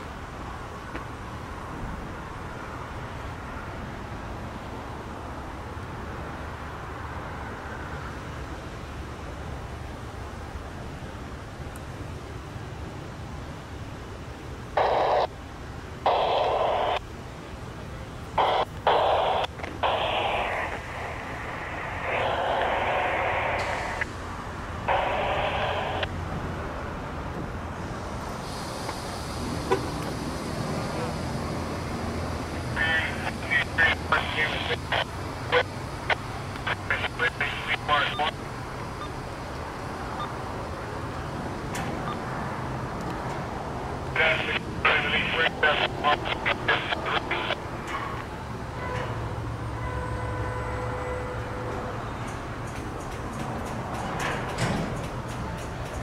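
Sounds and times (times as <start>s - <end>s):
crackling static: 14.7s - 15.4s, 16.0s - 17.1s, 18.3s - 24.1s, 24.8s - 26.1s, 32.4s - 41.2s, 44.0s - 48.4s
muffled radio transmissions: 14.7s - 15.4s, 16.0s - 17.1s, 17.7s - 26.2s, 30.8s - 42.4s, 43.8s - 48.4s
steady low rumble: 18.4s - 26.1s.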